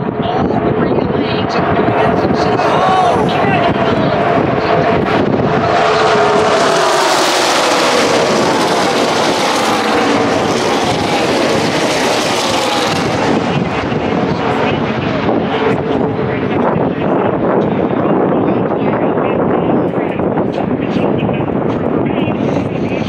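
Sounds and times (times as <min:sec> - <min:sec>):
race cars passing at full throttle: 0:00.0 - 0:23.0.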